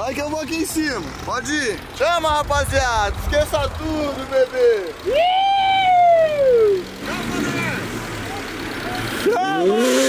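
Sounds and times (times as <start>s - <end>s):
truck engine hum: 0.0s - 10.0s
man shouting: 4.0s - 10.0s.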